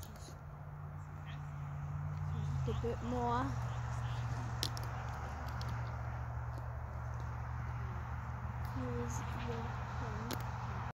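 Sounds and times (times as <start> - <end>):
steady low rumble: 0.0 - 10.9.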